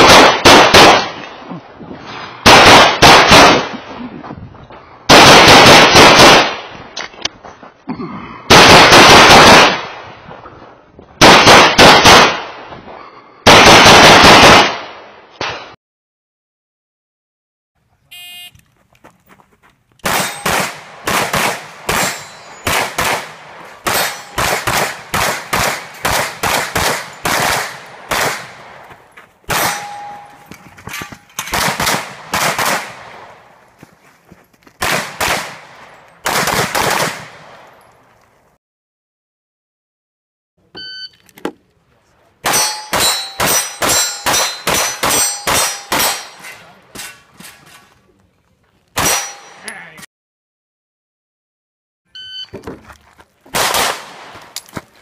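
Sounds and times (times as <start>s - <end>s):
pistol shots: 0.0s - 1.3s, 2.4s - 3.8s, 5.1s - 6.7s, 8.5s - 10.0s, 11.2s - 12.6s, 13.5s - 15.8s, 20.0s - 28.8s, 29.5s - 30.3s, 31.4s - 33.3s, 34.8s - 37.6s, 42.4s - 46.5s, 49.0s - 49.4s, 53.5s - 54.5s
brief ringing tone: 18.1s - 18.6s, 52.1s - 52.5s
steel target ringing: 21.9s - 22.8s, 23.9s - 24.5s, 29.5s - 30.5s, 42.5s - 46.6s, 49.0s - 49.7s.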